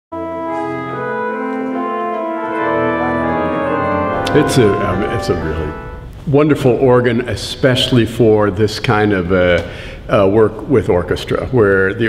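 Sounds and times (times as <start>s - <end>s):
pipe organ playing chords: 0.1s - 6.2s.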